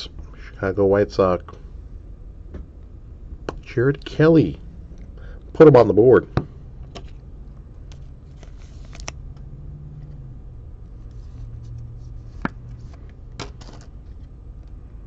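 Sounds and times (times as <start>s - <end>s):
low room hum: 0.0s - 15.0s
trading cards clicking and rustling: 12.3s - 14.3s.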